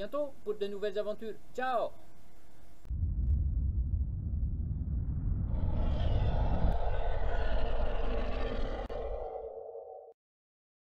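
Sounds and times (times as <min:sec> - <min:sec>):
low rumble: 0:02.8 - 0:10.1.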